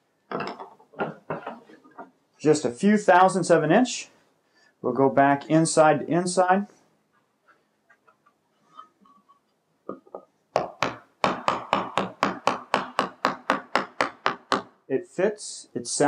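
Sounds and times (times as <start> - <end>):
mallet tapping wood: 9.9 - 14.8.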